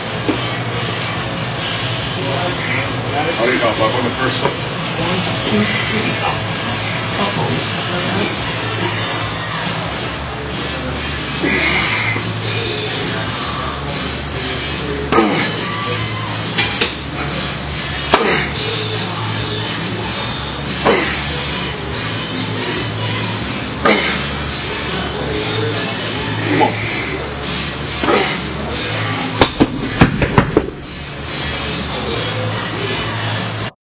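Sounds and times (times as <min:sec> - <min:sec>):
steady background hum: 0:00.0 - 0:33.8
background music with steady beat: 0:06.0 - 0:33.8
dumbbells hitting the floor: 0:29.4 - 0:30.8.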